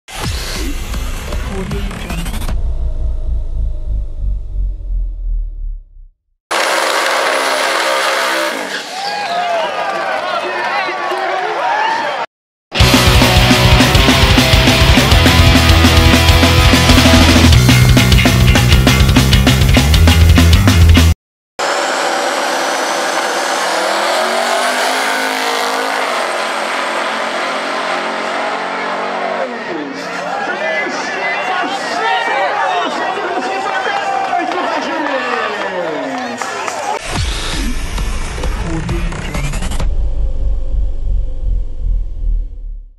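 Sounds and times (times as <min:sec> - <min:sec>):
drag car engine revving: 0:06.5 - 0:08.9, 0:12.8 - 0:17.7, 0:21.6 - 0:30.3.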